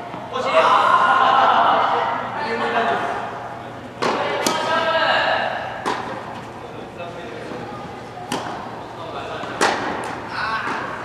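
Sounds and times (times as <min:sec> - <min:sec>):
tennis ball struck by rackets: 0:04.0 - 0:04.9, 0:05.8 - 0:06.4, 0:08.3 - 0:08.7, 0:09.4 - 0:11.0.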